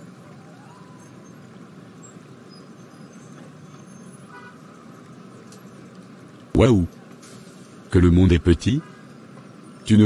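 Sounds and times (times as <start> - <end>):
low rumble of passing cars: 0.0 - 10.0
faint car horn toot: 4.3 - 4.6.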